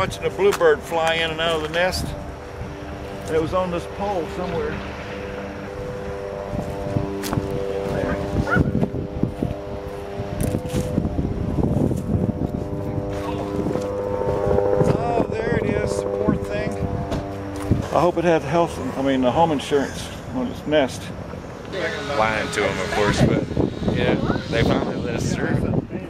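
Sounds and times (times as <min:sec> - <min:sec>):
engine running steadily: 0:00.0 - 0:26.0.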